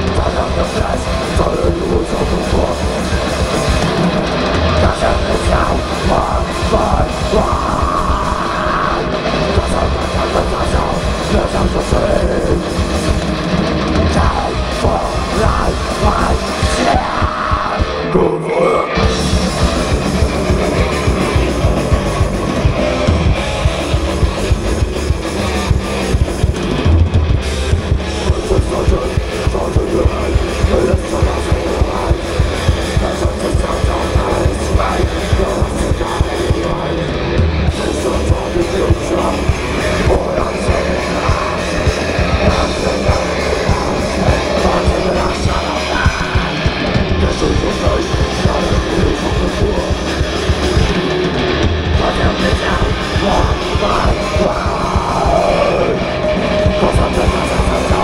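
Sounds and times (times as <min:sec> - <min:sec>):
bass guitar: 0:00.0 - 0:58.0
distorted electric guitars: 0:00.0 - 0:58.0
fast drums: 0:00.0 - 0:58.0.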